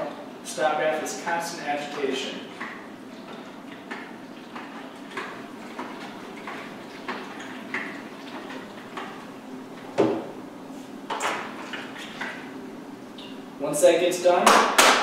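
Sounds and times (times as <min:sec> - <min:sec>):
liquid sloshing in tank: 0:01.0 - 0:13.6.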